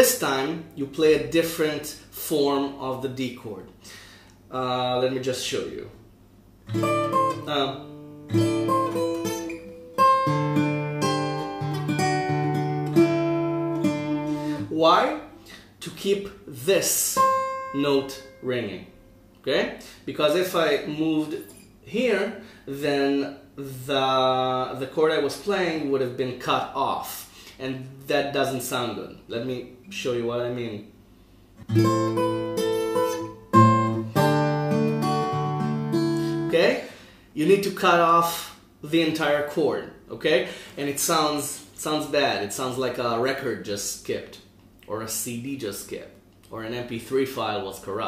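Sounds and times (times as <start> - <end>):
fingerpicked acoustic guitar: 6.6 - 14.7, 17.2 - 19.2, 31.6 - 36.6.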